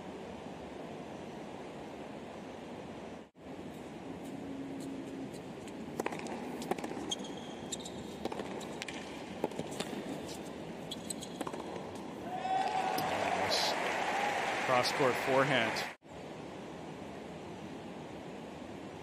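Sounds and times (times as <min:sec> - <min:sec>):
racket strokes: 0:03.7 - 0:12.1
tennis ball bounces: 0:05.9 - 0:12.0.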